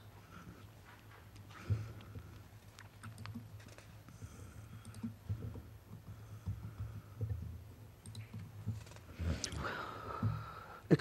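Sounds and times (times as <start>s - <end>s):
steady low hum: 0.0s - 11.0s
keyboard clicks: 2.7s - 3.9s, 4.8s - 9.7s.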